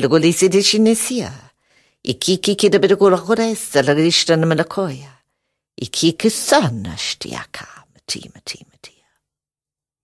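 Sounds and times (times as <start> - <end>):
woman speaking softly: 2.1 - 5.2, 5.8 - 9.2.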